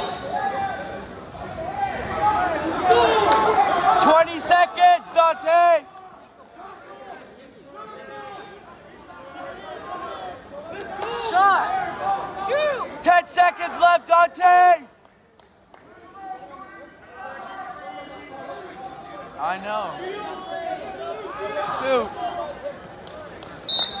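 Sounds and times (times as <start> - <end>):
referee's whistle: 0.0 - 0.4, 23.7 - 24.0
background chatter of people: 0.0 - 24.0.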